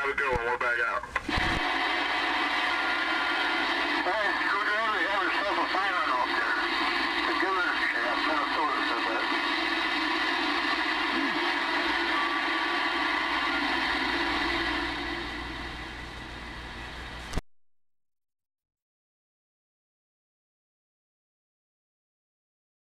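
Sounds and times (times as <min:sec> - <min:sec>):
radio static hiss: 0:00.0 - 0:17.4
garbled radio voices: 0:02.7 - 0:13.6.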